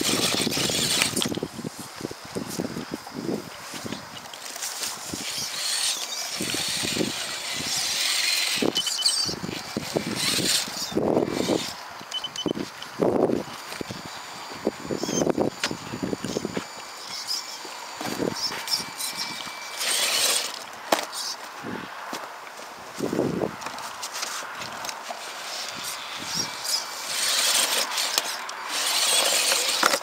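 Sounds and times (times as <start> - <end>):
electric motor and gears whining: 0.0 - 21.8, 22.9 - 30.0.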